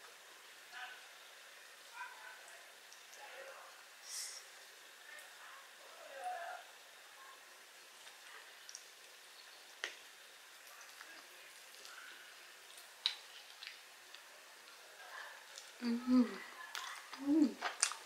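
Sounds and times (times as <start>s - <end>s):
crispy crust crackles: 0.0s - 18.0s
mouth chewing sounds: 16.7s - 18.0s.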